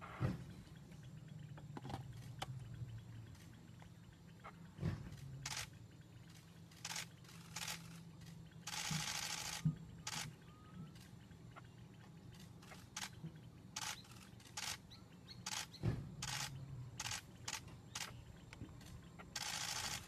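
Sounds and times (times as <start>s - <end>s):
camera shutters clicking: 15.5s - 18.2s, 19.4s - 20.0s.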